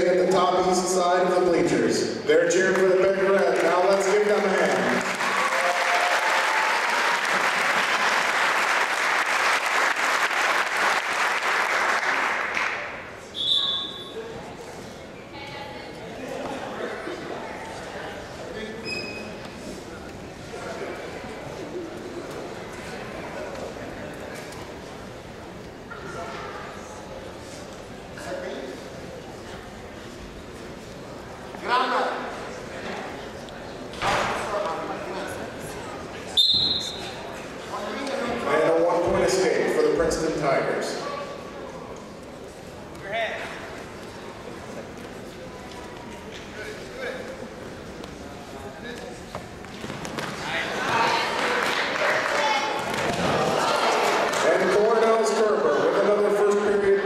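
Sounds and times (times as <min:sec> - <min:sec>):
crowd chatter in a gym: 0:00.0 - 0:57.0.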